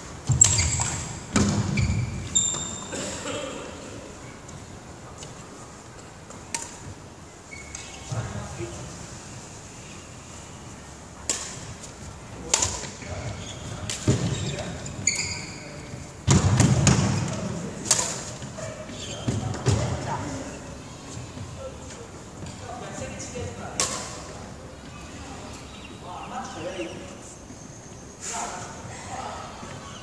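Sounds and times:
racket hitting shuttlecock: 6.5 - 6.9, 11.2 - 11.8, 17.8 - 18.4, 23.8 - 24.3.

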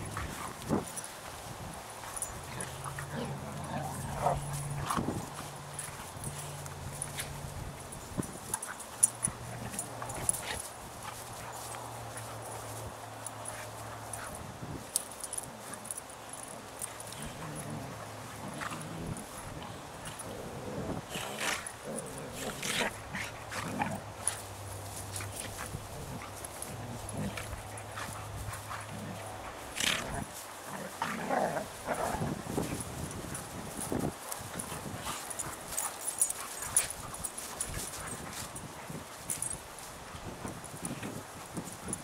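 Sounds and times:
dogs scuffling on grass: 0.0 - 42.0.

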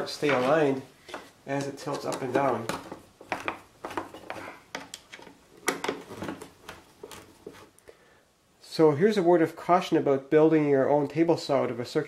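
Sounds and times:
handling wooden parts: 0.0 - 7.8.

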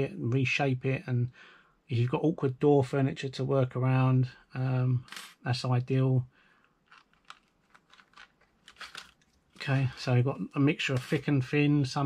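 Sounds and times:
small clicks: 6.6 - 9.8
tension wrenches ticking and rustling: 6.8 - 9.8.

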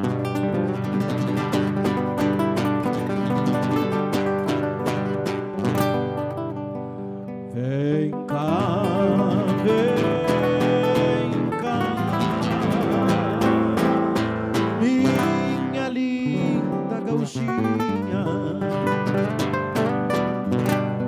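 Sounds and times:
strummed acoustic guitar: 0.0 - 21.0.

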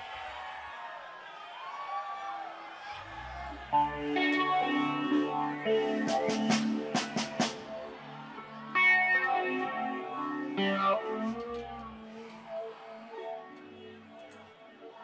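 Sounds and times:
live rock band playing: 3.8 - 8.1, 8.7 - 12.3
electric guitar chords ringing: 3.8 - 14.2.

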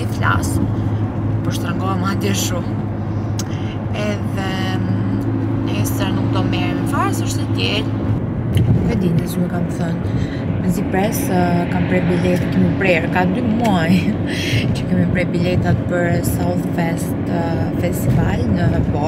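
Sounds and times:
woman talking: 0.0 - 0.7, 1.4 - 2.8, 3.4 - 7.9, 8.6 - 19.0
car engine hum: 0.0 - 19.0
road noise: 0.0 - 19.0.

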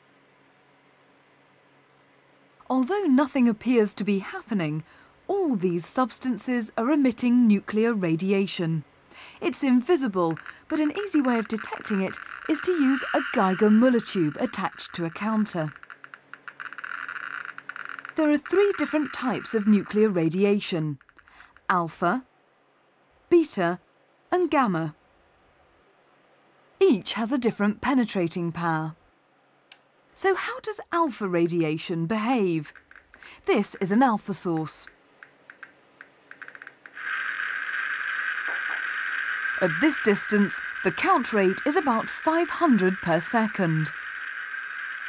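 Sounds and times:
geiger counter clicking: 9.5 - 21.8, 32.5 - 45.0.

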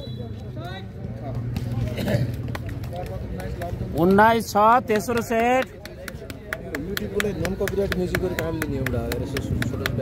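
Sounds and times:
rapid hand claps: 2.3 - 10.0.

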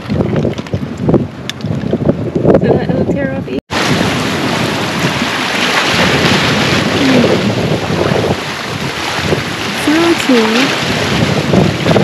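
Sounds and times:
wind buffeting microphone: 0.0 - 12.0
sea waves on rocky shore: 3.7 - 12.0.

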